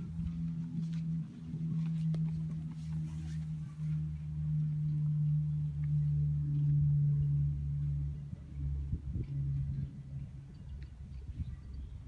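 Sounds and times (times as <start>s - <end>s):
fainter deeper hum: 0.0s - 12.0s
steady low hum: 0.0s - 12.0s.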